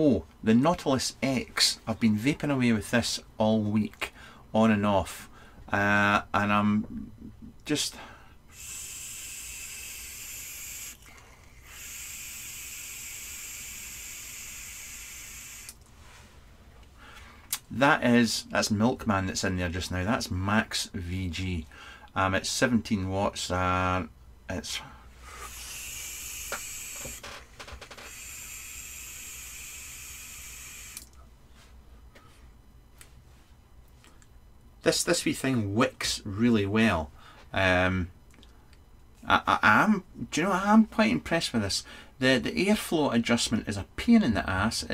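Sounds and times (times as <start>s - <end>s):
breathy vapour hisses: 8.0s - 16.2s, 25.1s - 27.2s, 28.0s - 31.0s
vape crackles: 8.5s - 15.8s, 25.4s - 31.1s.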